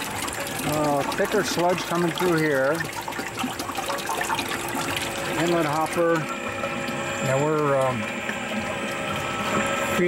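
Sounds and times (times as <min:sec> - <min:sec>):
liquid pouring and splashing: 0:00.0 - 0:10.0
steady machine hum: 0:00.0 - 0:10.0.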